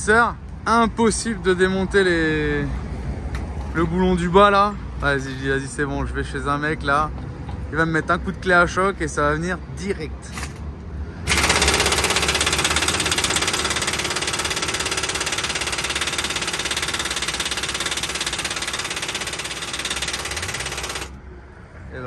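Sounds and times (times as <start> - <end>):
impact wrench hammering: 11.3 - 21.2.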